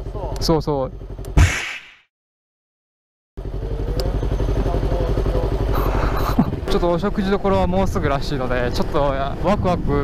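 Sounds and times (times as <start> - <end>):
motorcycle engine idling: 0.0 - 1.4, 3.4 - 9.4.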